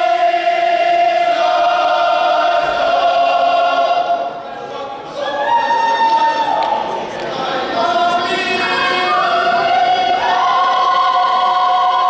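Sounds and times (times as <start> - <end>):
choir singing held chords: 0.0 - 5.1, 6.9 - 12.0.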